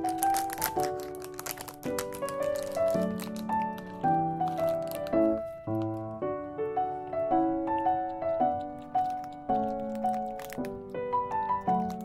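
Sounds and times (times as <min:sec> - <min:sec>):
gentle melody over soft chords: 0:00.0 - 0:12.0.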